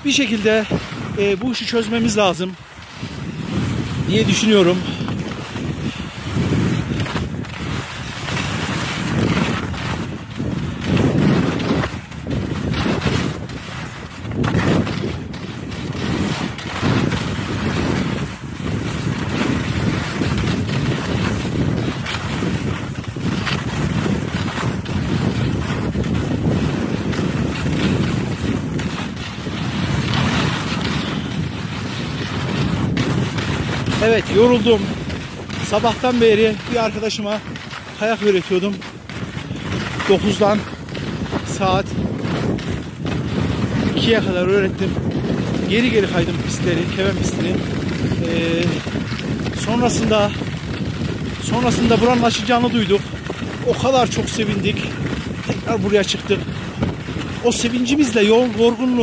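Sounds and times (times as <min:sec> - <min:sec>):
skis scraping on hard snow: 0:00.0 - 0:59.0
wind rushing over microphone: 0:00.0 - 0:59.0.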